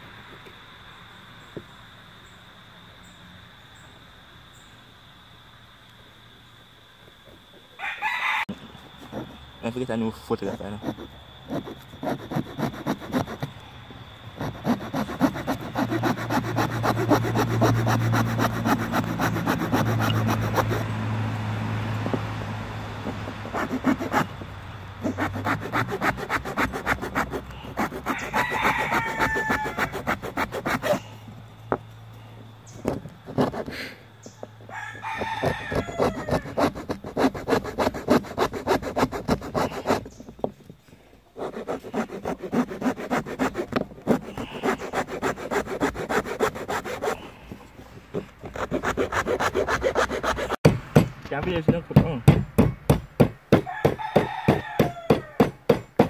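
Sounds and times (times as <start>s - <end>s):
rooster crowing: 7.8s - 9.4s, 27.0s - 31.1s, 34.2s - 36.9s, 53.6s - 55.6s
hacksaw sawing wood: 9.0s - 9.4s, 10.4s - 13.5s, 14.4s - 21.1s, 23.0s - 24.4s, 25.0s - 31.1s, 33.0s - 33.9s, 35.0s - 40.3s, 41.4s - 47.4s, 48.1s - 56.0s.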